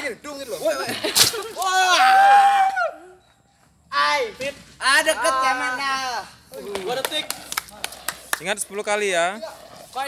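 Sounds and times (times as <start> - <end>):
people talking outdoors: 0.0 - 10.0.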